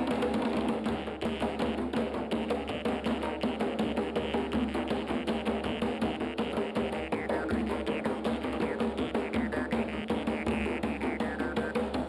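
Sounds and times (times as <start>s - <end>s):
djembe drums playing: 0.0s - 12.0s.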